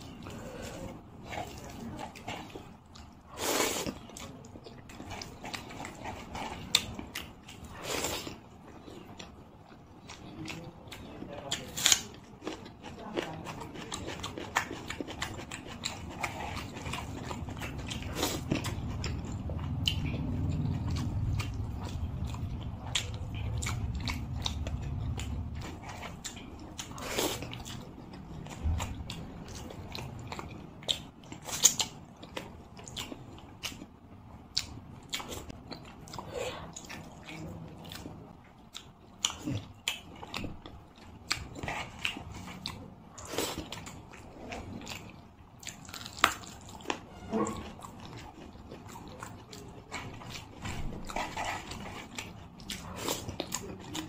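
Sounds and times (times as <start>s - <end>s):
wet chewing: 0.0s - 54.0s
low rumble: 17.0s - 26.7s.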